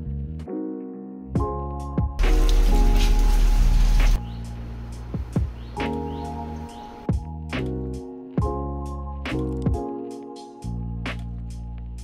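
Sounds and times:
background music: 0.0s - 12.0s
heavy rain hissing: 2.2s - 7.1s.

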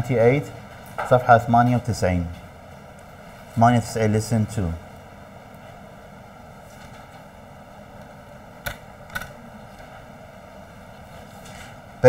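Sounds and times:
faint recording hiss: 0.0s - 12.0s.

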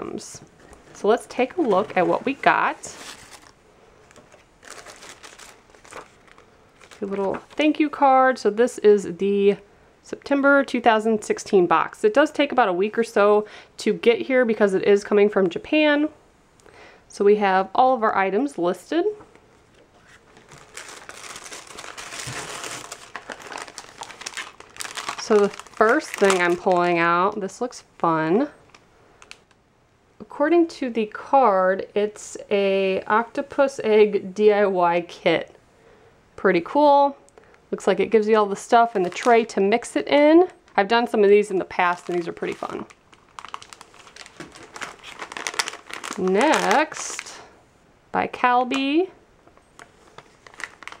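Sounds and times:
paper and plastic packaging crinkling: 0.6s - 8.0s, 19.9s - 27.4s, 28.5s - 29.5s, 38.6s - 39.9s, 40.6s - 47.4s, 49.6s - 51.0s.

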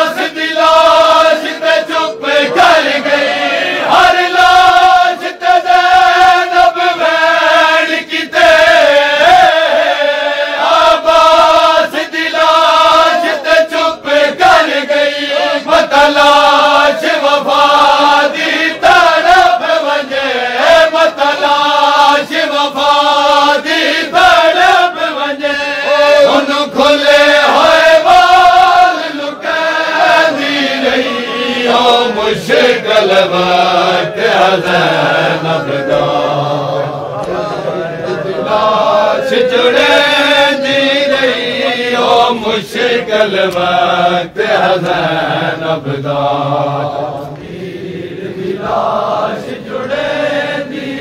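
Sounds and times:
men chanting a lament: 0.0s - 51.0s.

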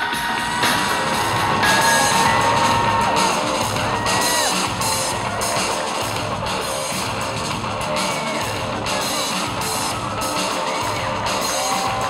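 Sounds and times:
loud runway music: 0.0s - 12.0s.

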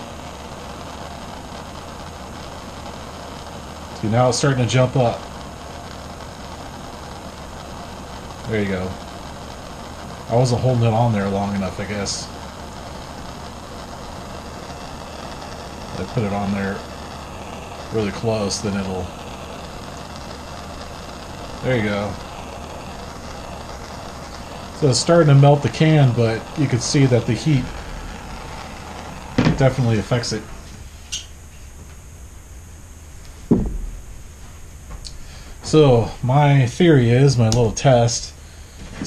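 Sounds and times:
gas torch flame hissing: 0.0s - 39.0s
dull thump: 29.4s - 29.6s, 33.4s - 34.1s.

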